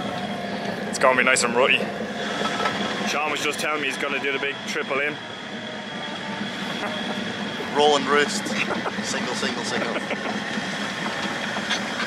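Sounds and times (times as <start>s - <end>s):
machinery rumble: 0.0s - 12.0s
faint high whine: 2.5s - 9.9s.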